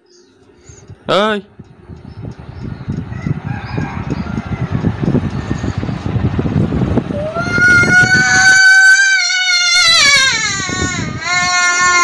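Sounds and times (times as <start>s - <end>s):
child wailing: 7.2s - 12.0s.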